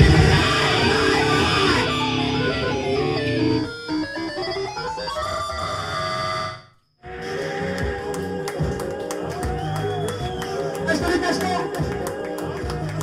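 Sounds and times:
electric guitar: 0:00.0 - 0:04.7
keyboards: 0:00.0 - 0:13.0.

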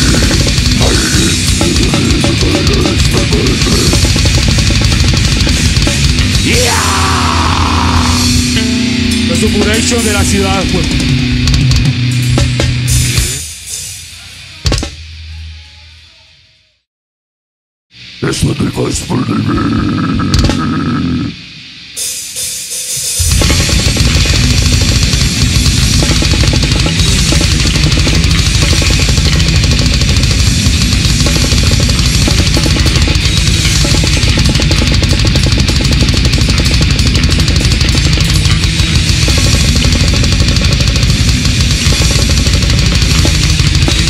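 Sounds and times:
drum kit: 0:00.0 - 0:16.2, 0:19.4 - 0:44.0
distorted electric guitars: 0:00.0 - 0:16.5, 0:17.9 - 0:44.0.

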